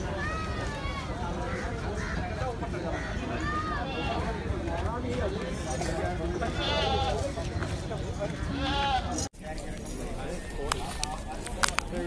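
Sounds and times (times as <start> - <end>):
crowd chatter: 0.0 - 12.0
goat bleating: 6.4 - 7.2, 8.5 - 9.2.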